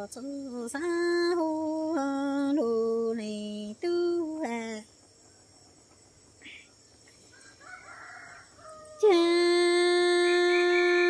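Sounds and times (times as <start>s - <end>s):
rooster crowing: 7.3s - 9.6s.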